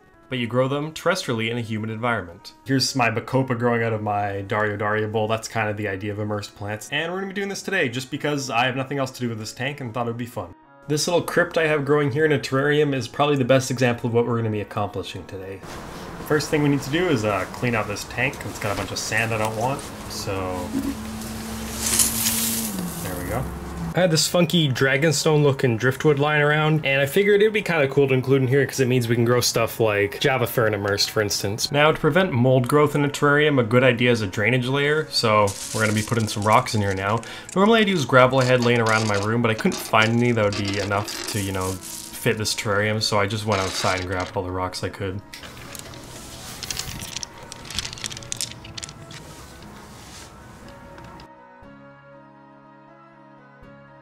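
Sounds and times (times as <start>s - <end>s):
sand pouring and sliding: 15.6s - 23.6s, 35.2s - 42.4s, 43.4s - 44.4s, 45.4s - 50.6s
background hiss: 15.6s - 24.0s, 45.5s - 51.2s
low hum: 19.8s - 24.0s
stones clattering against glass: 20.7s - 23.2s, 35.4s - 42.3s, 43.4s - 44.4s, 45.4s - 49.9s.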